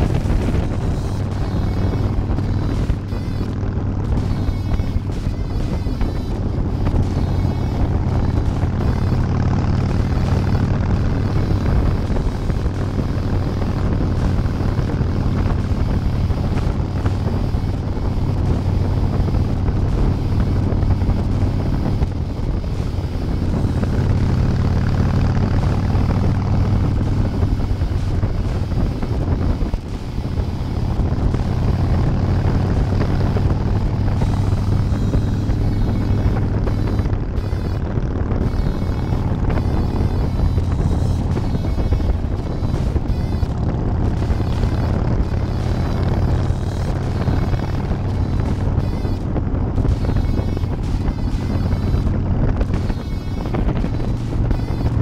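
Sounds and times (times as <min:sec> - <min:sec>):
motorcycle engine running: 0:00.0 - 0:55.0
wind rushing over microphone: 0:00.0 - 0:55.0.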